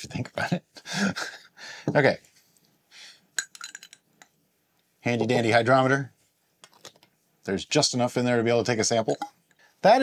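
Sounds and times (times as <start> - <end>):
glassy clinks: 3.4 - 4.3.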